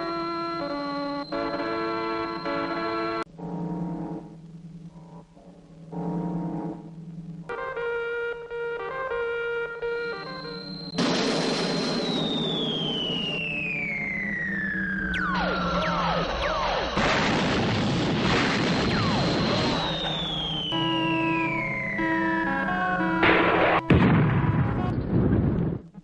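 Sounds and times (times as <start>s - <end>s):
held low notes: 3.3s - 7.8s
high whistle gliding down: 10.0s - 17.0s, 18.7s - 23.1s.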